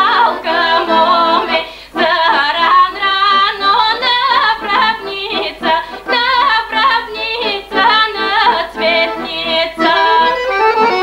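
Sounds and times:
accordion: 0:00.0 - 0:11.0
woman singing folk song: 0:00.0 - 0:11.0.

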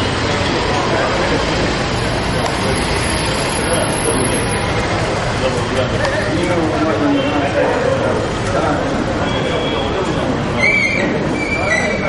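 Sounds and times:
indoor crowd murmur: 0:00.0 - 0:12.0.

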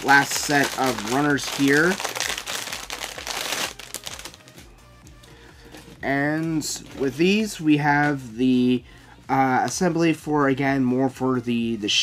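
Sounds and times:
plastic bag crinkling: 0:00.0 - 0:04.6.

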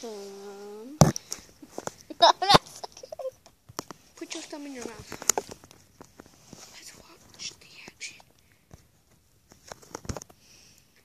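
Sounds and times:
child whispering: 0:06.7 - 0:08.3.

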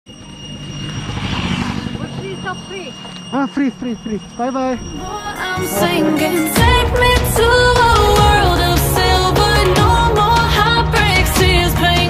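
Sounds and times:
motorbike passing by: 0:00.4 - 0:03.3.

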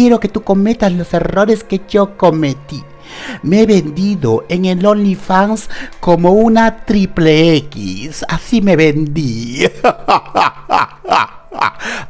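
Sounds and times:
man laughing loudly: 0:09.6 - 0:12.0.

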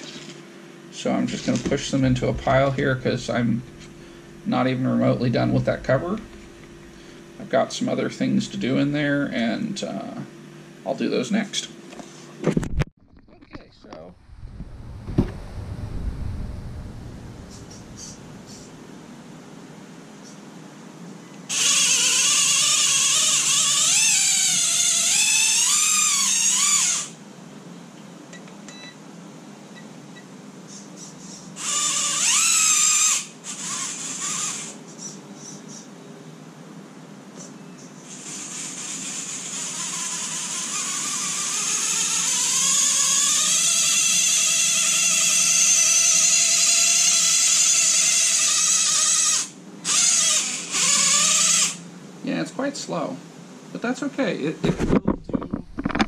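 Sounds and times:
electric motor whining: 0:01.4 - 0:07.4, 0:31.6 - 0:34.8, 0:38.1 - 0:51.8.

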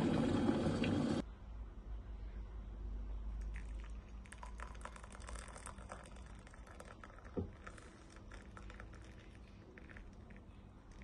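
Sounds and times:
water trickling into a mug: 0:03.4 - 0:11.0.

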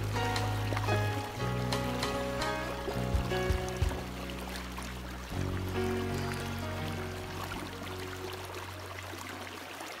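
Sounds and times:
background music: 0:00.0 - 0:09.6
creek running over rock: 0:00.0 - 0:10.0.

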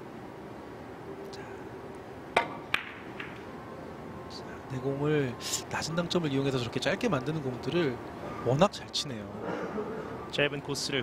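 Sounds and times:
billiard balls clicking: 0:02.4 - 0:03.4
cue striking billiard ball: 0:02.4 - 0:03.4.

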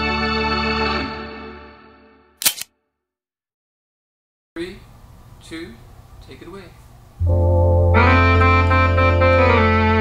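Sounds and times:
organ chord: 0:07.2 - 0:10.0.

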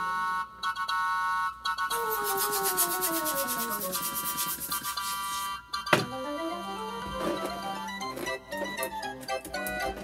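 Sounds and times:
background music: 0:01.6 - 0:05.0, 0:05.6 - 0:10.0
balloon pump air strokes: 0:01.9 - 0:05.4.

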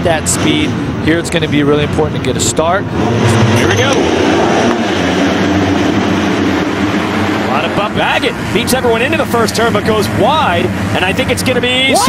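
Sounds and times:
motocross bikes revving: 0:00.0 - 0:12.0.

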